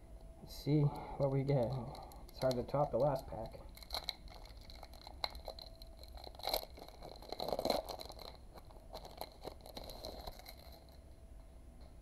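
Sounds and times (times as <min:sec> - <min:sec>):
wrapper crinkling: 0:01.4 - 0:11.0.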